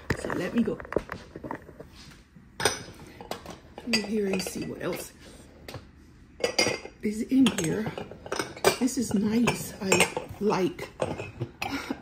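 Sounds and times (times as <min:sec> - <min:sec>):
ceramic mugs clinking: 0:02.6 - 0:05.2, 0:06.4 - 0:12.0.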